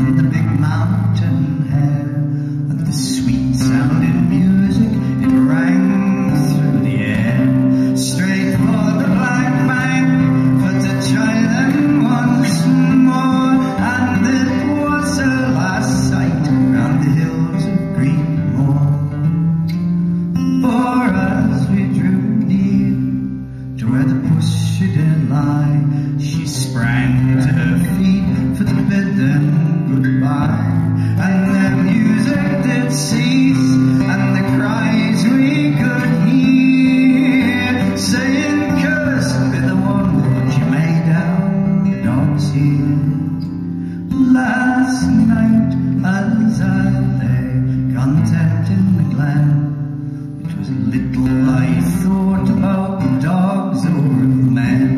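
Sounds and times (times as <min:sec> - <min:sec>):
fingerpicked acoustic guitar: 0:00.0 - 0:54.9.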